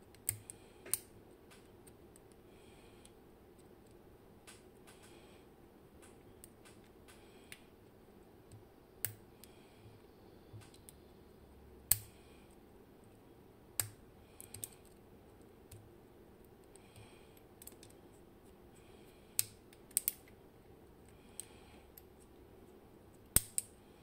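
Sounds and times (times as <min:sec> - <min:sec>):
metal pick clicking on lock parts: 0:13.8 - 0:15.0, 0:19.4 - 0:20.3.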